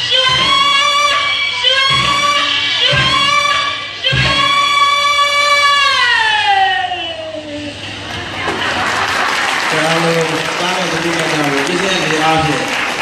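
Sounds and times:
audience applauding: 8.1s - 13.0s.

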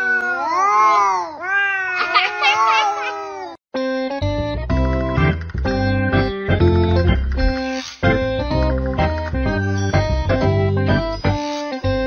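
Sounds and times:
cat yowling: 0.0s - 3.6s.

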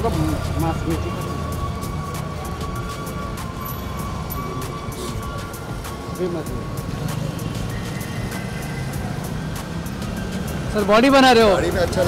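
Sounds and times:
city street traffic rumble: 0.0s - 12.0s.

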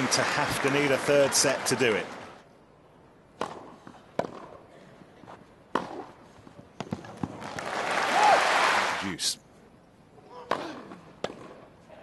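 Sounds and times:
crowd noise: 0.0s - 2.5s.

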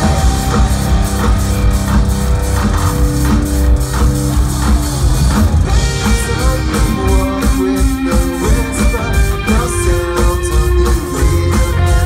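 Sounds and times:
drum kit: 0.0s - 12.0s
electric guitars sustained notes: 0.0s - 12.0s.

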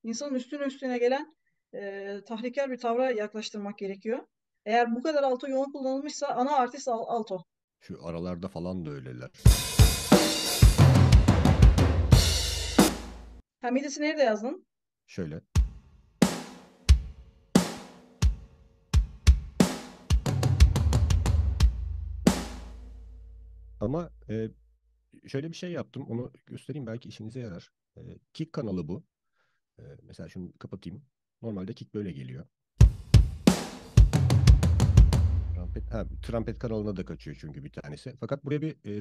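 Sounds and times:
rock drum kit: 9.4s - 13.4s, 15.6s - 22.8s, 32.8s - 35.5s.

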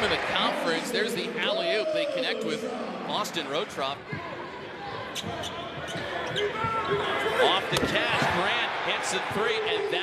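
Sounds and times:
arena crowd noise: 0.0s - 10.0s
sneakers squeaking on court: 5.0s - 7.2s.

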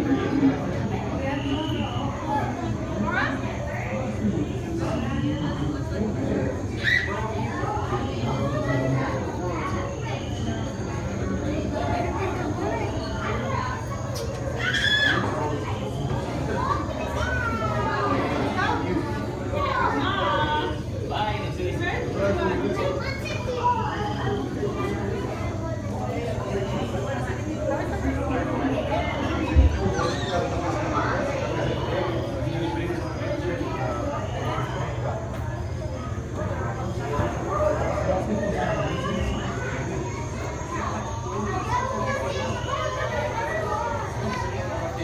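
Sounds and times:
children's voices: 0.0s - 45.0s
people chattering: 0.0s - 45.0s.

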